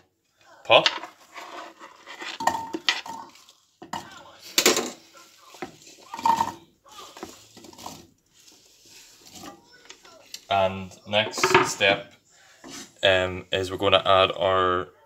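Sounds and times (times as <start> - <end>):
knife scraping across board: 0.9 - 3.2
apple chunks clattering into saucepan: 2.2 - 8.1.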